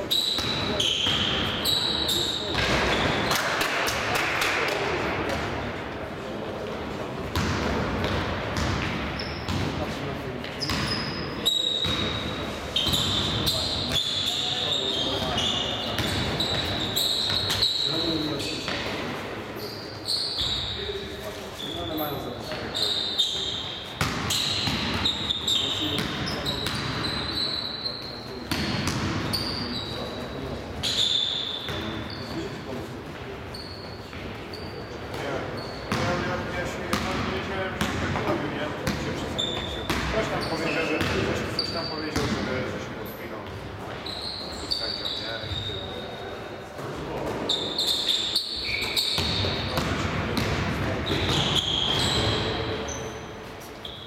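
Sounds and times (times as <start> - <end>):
sneakers squeaking: 0.0 - 5.6, 6.6 - 54.0.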